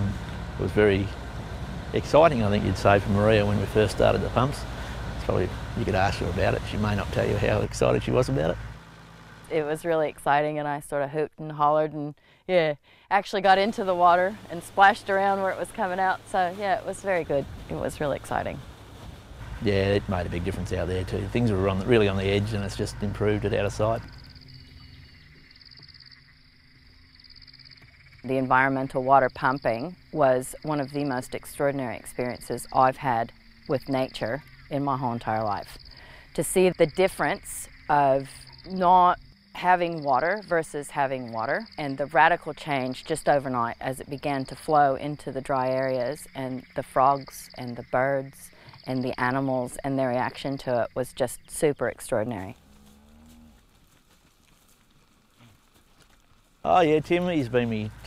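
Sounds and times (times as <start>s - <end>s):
low steady hum: 0.0s - 53.7s, 56.5s - 58.0s
frog trilling: 20.4s - 43.8s
cow mooing: 52.4s - 53.6s.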